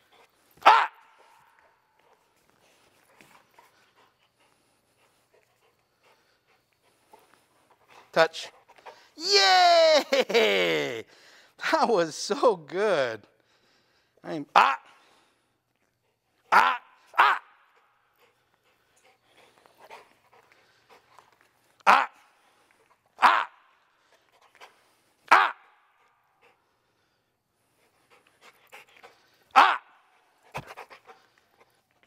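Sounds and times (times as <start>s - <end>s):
dog barking: 0.6s - 1.1s, 16.5s - 17.5s, 23.2s - 23.6s, 25.3s - 25.6s, 29.6s - 29.9s.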